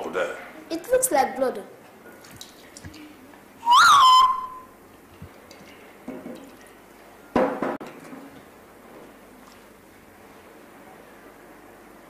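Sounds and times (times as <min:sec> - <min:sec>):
short swooping whistle: 0:03.6 - 0:04.7.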